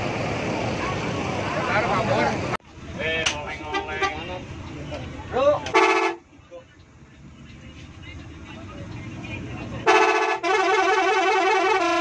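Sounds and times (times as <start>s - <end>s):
bus engine rumble: 0.0s - 12.0s
bus horn blast: 3.6s - 4.3s, 5.7s - 6.3s, 9.8s - 12.0s.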